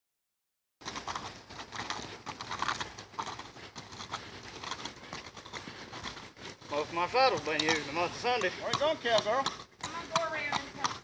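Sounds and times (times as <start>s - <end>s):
horse hooves walking on gravel: 0.8s - 11.0s.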